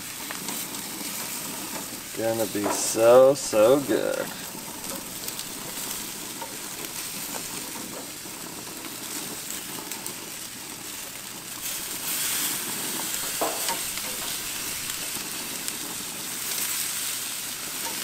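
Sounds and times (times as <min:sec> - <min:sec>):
fish fillets sizzling on a grill: 0:00.0 - 0:18.0.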